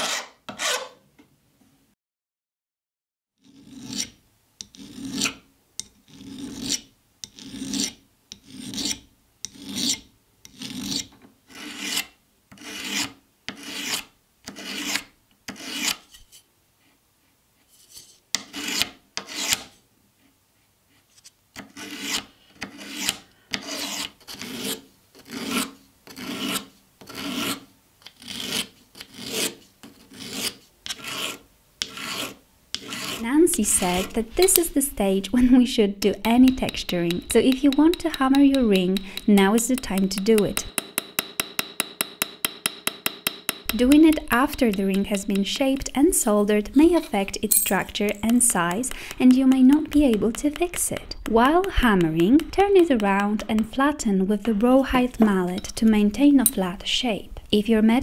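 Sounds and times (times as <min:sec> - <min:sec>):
hand file rasping on metal sheet: 0:00.0 - 0:01.0, 0:06.1 - 0:16.3, 0:21.6 - 0:27.6, 0:28.2 - 0:40.8, 0:43.6 - 0:56.5.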